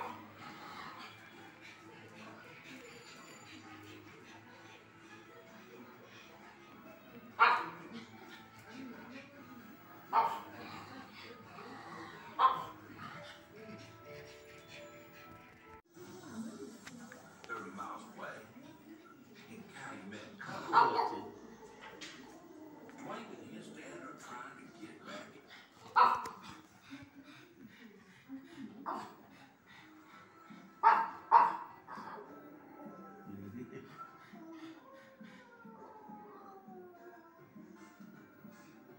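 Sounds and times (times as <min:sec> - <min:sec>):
television music: 0:00.0 - 0:38.9
television speech: 0:00.0 - 0:38.9
dog barking: 0:07.4 - 0:07.9, 0:10.1 - 0:10.5, 0:12.4 - 0:12.8, 0:20.6 - 0:21.3, 0:25.9 - 0:26.4, 0:30.8 - 0:32.1.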